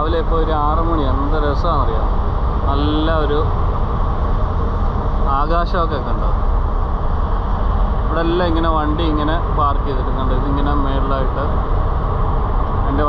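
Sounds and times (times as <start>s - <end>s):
people talking: 0.0s - 3.5s, 5.3s - 6.4s, 8.1s - 11.6s
ferry engine rumble: 0.0s - 13.0s.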